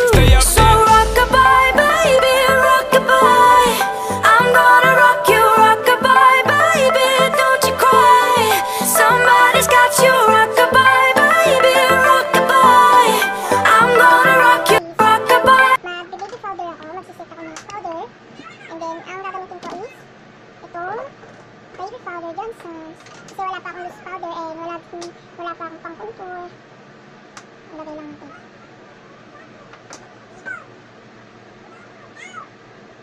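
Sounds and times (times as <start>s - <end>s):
children talking and calling: 17.4s - 20.0s.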